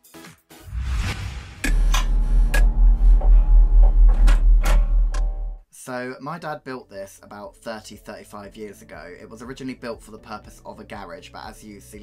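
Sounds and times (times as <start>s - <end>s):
whoosh: 0.7s - 5.1s
sharp hits: 0.7s - 5.6s
pulsing deep bass rumble: 0.8s - 5.6s.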